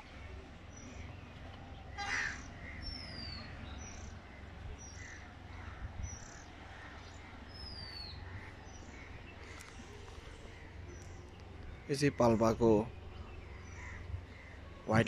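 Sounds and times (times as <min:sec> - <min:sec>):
birds calling: 0:00.0 - 0:15.0
steady low rumble: 0:00.0 - 0:15.0.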